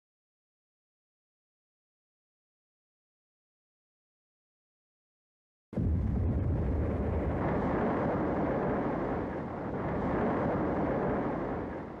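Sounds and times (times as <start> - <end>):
explosion with deep rumbling: 5.8 - 12.0.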